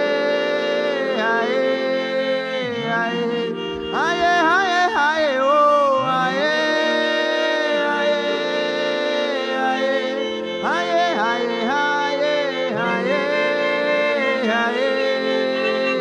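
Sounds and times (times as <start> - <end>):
man singing wordlessly: 0.0 - 16.0
sustained instrumental chords: 0.0 - 16.0.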